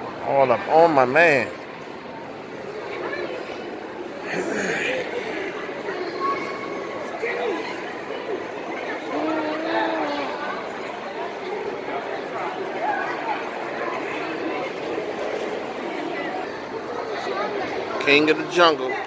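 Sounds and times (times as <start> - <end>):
indistinct chatter of voices: 0.0 - 19.0.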